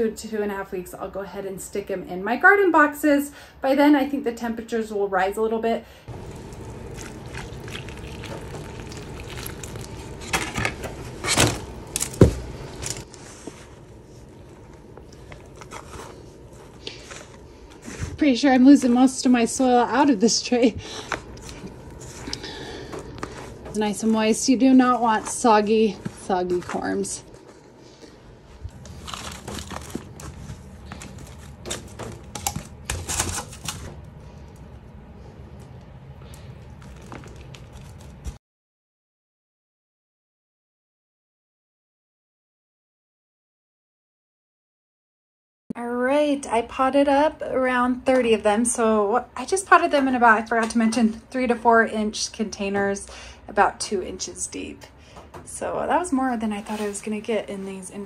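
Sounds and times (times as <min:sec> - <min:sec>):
hands packing potting soil: 0:06.1 - 0:19.3
potting mix scraping in plastic tray: 0:15.2 - 0:19.6, 0:23.1 - 0:27.2, 0:56.4 - 0:57.9.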